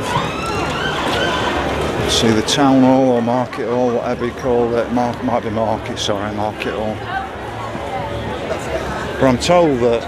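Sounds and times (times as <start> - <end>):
siren wailing: 0.0 - 1.7
crowd chatter: 0.0 - 10.0.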